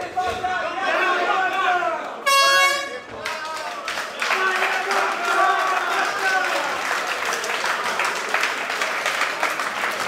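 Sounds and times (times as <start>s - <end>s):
crowd shouting: 0.0s - 3.3s
horn blast: 2.2s - 3.1s.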